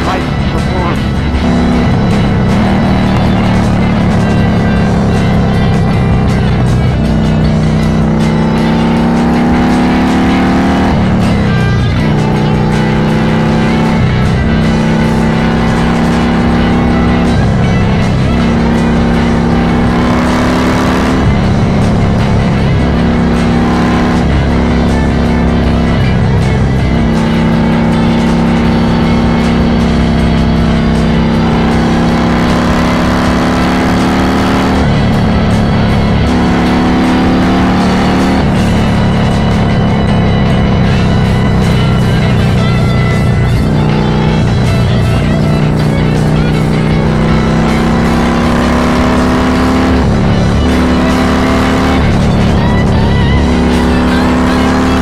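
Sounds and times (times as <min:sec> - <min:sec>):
motorcycle engine cruising: 0:00.0 - 0:55.0
music: 0:00.0 - 0:55.0
wind and road noise: 0:00.0 - 0:55.0.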